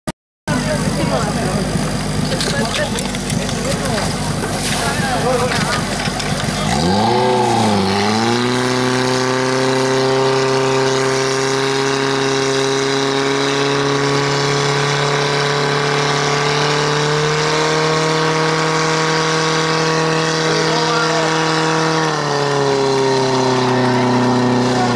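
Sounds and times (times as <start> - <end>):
pump engine running: 0.5 - 24.9.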